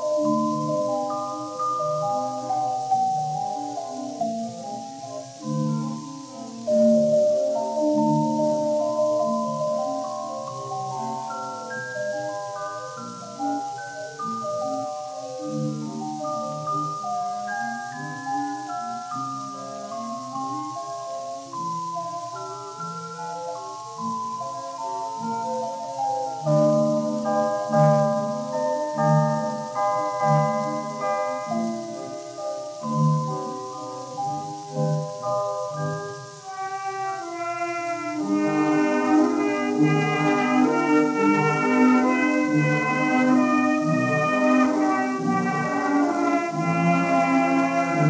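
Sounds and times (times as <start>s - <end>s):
light orchestra playing: 0.0s - 48.0s
record surface hiss: 0.0s - 48.0s.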